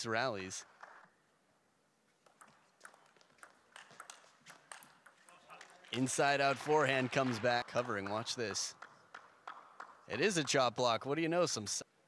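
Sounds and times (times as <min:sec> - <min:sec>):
table tennis ball clicking: 0:02.2 - 0:05.7, 0:08.8 - 0:10.6.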